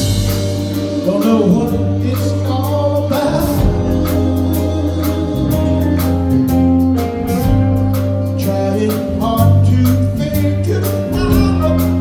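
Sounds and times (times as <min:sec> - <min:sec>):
electric bass: 0:00.0 - 0:12.0
held organ chords: 0:00.0 - 0:12.0
live rock band playing: 0:00.0 - 0:12.0
man singing lead: 0:00.1 - 0:12.0.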